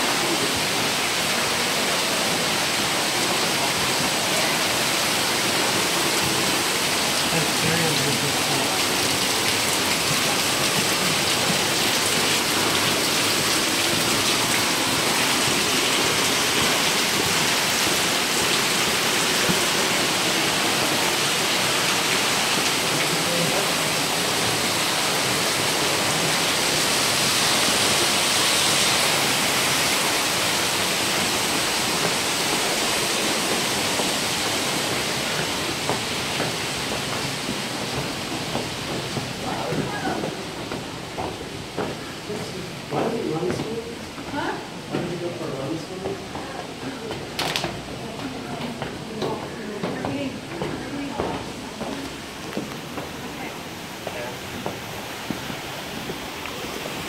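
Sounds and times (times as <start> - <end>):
waterfall rushing and splashing: 0.0 - 57.0.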